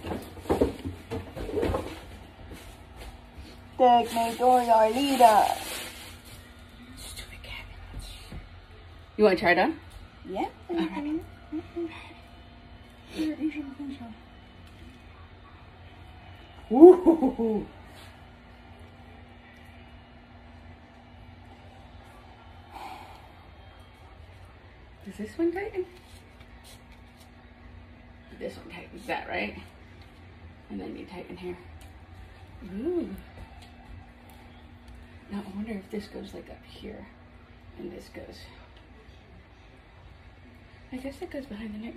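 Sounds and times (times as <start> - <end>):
faint low hum: 0.0 - 41.9
person hooting: 16.7 - 17.8.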